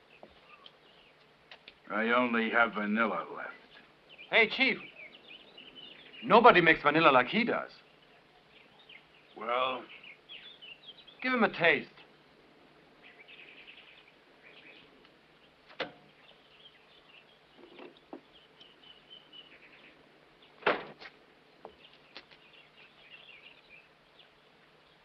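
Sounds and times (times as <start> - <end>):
faint bird chirping: 0.0 - 20.6, 21.3 - 25.0
sharp clicks or knocks: 15.7 - 16.0.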